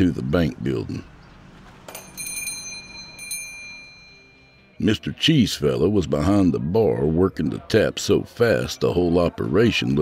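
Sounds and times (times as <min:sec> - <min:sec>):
small door bell ringing: 0:01.9 - 0:04.8.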